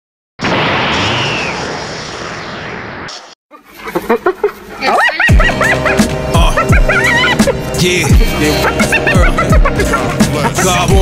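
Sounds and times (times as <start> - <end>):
hyena giggling: 3.8 - 7.6, 8.5 - 10.9
hip hop beat with deep kick drum: 5.3 - 11.0.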